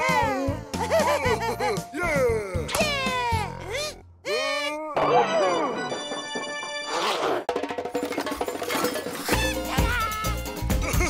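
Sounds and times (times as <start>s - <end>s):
background music: 0.0s - 4.0s, 4.9s - 11.0s.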